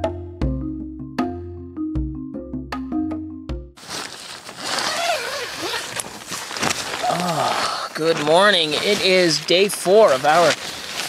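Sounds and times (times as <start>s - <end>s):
tent fabric rustling: 3.8s - 11.0s
person vocalizing: 7.0s - 8.0s.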